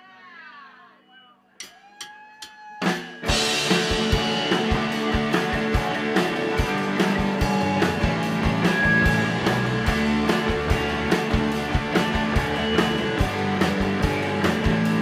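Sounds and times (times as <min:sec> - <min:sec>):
drum kit kick beat: 0:02.4 - 0:15.0
bass guitar: 0:03.2 - 0:15.0
electric guitars: 0:03.2 - 0:15.0.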